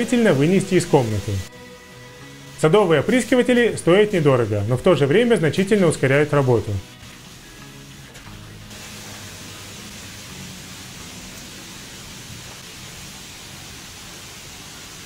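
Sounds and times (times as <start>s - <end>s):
soft background music: 0.0s - 14.0s
garden sprayer hissing: 6.8s - 15.0s.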